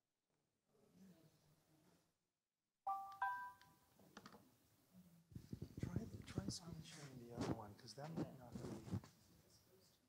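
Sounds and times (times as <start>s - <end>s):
two-note electronic chime: 2.9s - 3.6s.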